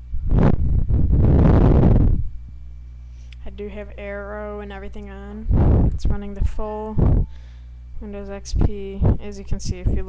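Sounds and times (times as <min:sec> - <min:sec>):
wind gusts hitting microphone: 0:00.2 - 0:02.3, 0:05.5 - 0:06.2, 0:06.9 - 0:07.3, 0:08.5 - 0:10.0.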